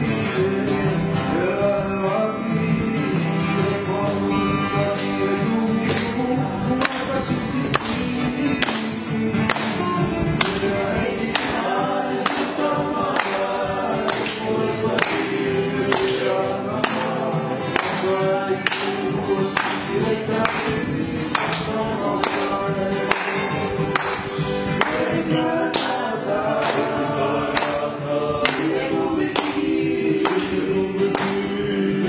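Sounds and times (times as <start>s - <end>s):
acoustic guitars strumming: 0.0s - 32.0s
men singing together: 0.0s - 32.0s.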